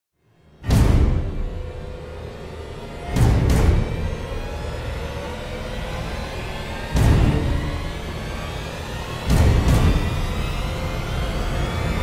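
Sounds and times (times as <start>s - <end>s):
dark suspenseful drone music: 0.2s - 12.0s.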